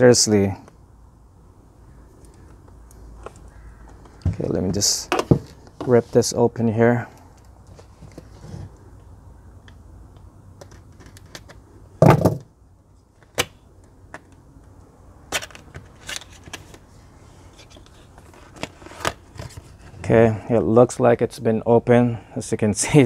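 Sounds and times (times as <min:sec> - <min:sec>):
loud thud: 0:12.0 - 0:12.5.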